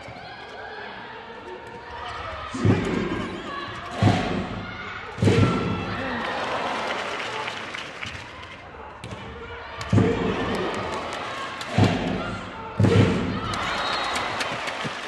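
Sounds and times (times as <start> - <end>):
crowd noise echoing in hall: 0.0 - 15.0.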